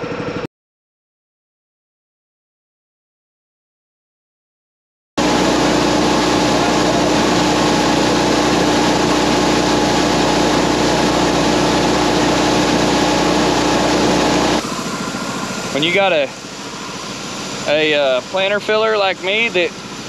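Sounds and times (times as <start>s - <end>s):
tractor engine droning: 5.2s - 20.0s.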